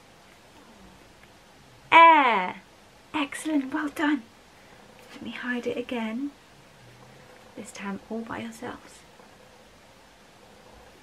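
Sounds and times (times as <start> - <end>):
woman calling out: 1.9 - 2.6.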